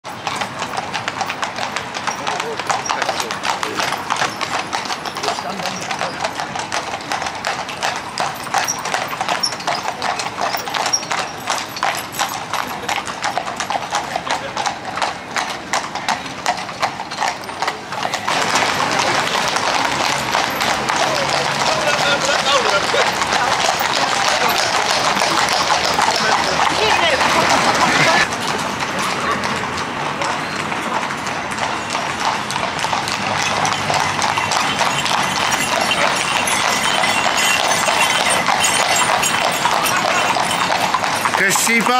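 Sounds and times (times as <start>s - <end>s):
horse hooves on asphalt: 0.0s - 41.9s.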